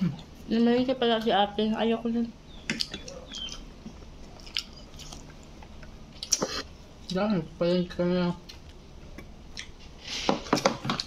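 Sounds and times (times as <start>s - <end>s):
person chewing food: 2.6s - 7.2s, 8.4s - 11.0s.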